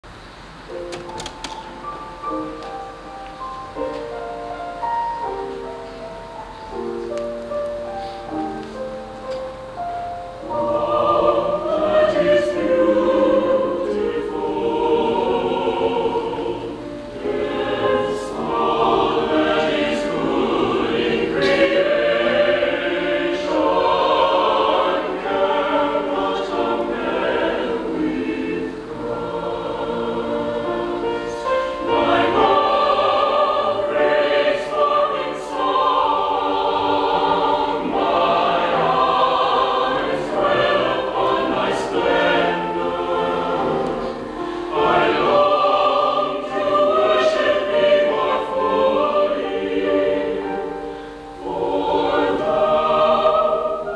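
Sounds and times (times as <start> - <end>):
chamber choir singing chords: 0.7 - 53.9.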